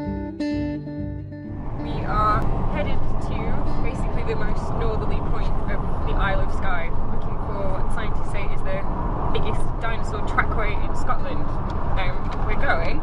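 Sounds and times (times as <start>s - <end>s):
car rumble inside cabin: 1.5s - 13.0s
people talking: 1.8s - 8.8s, 9.4s - 13.0s.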